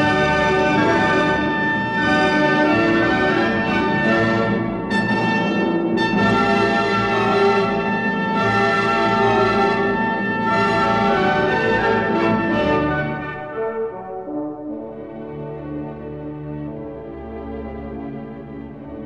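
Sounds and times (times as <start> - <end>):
brass and orchestra chords: 0.0 - 19.0.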